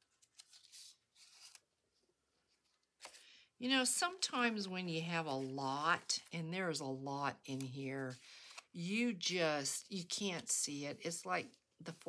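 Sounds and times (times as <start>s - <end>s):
faint paper rustle: 0.0s - 3.4s.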